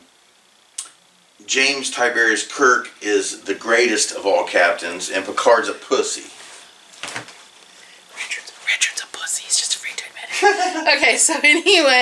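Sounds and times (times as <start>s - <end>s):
person whispering: 8.2s - 10.3s.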